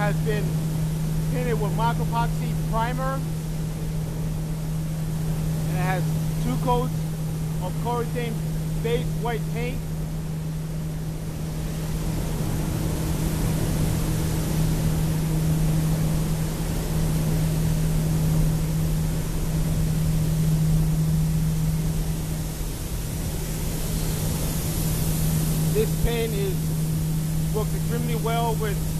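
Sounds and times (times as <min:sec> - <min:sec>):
industrial machinery humming: 0:00.0 - 0:28.9.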